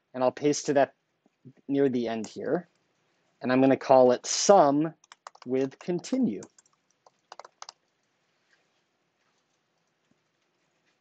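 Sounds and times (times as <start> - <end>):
computer keyboard typing: 5.0 - 8.1.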